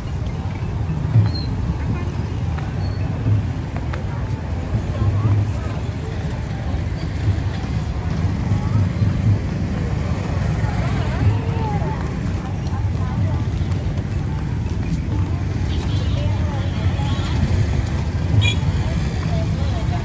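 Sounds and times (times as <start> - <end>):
people talking: 0.0 - 20.0
traffic rumble: 0.0 - 20.0.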